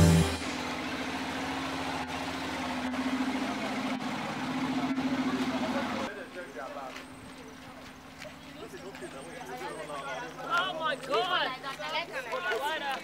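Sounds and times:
loud music: 0.0s - 0.8s
outdoor background noise: 0.0s - 13.0s.

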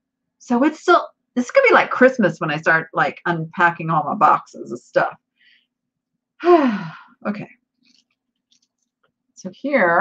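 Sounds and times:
woman sighing: 6.4s - 7.2s.

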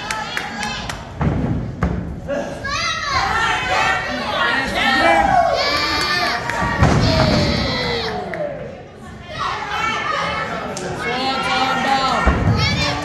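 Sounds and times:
crowd shouting and cheering: 2.3s - 13.0s.

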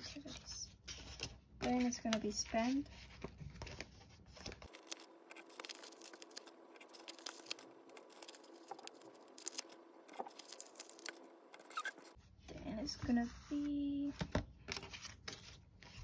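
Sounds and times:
stickers peeled and rubbed: 0.9s - 12.2s.

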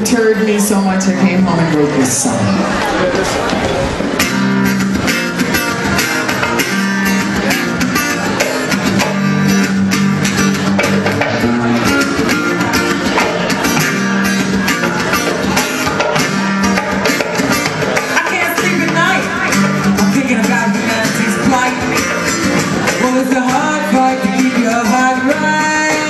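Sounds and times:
strummed guitar: 0.0s - 26.0s
sustained bass notes: 0.0s - 26.0s.

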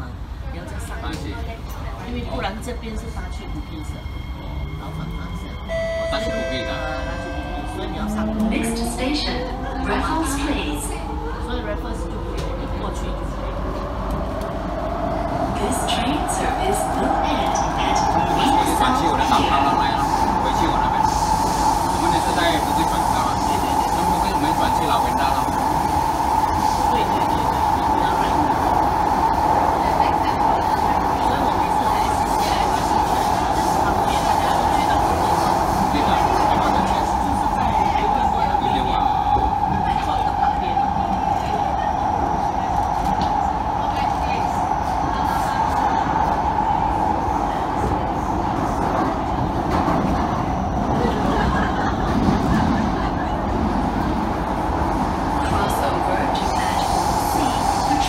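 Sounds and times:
train rail rumble and hiss: 8.0s - 58.0s.

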